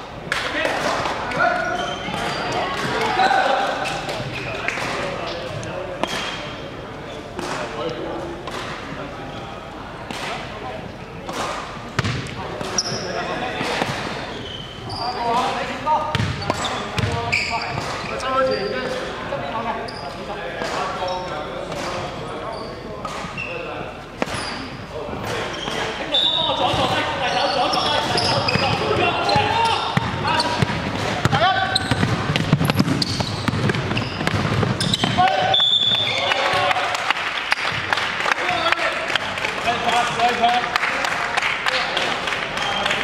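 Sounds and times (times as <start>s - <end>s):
players calling out: 12.3s - 40.7s
ball bouncing on hardwood floor: 28.4s - 35.2s.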